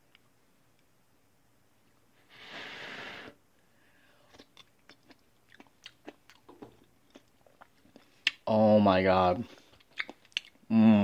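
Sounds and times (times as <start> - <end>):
chewing clicks and smacks: 4.3 - 8.4, 9.7 - 10.6.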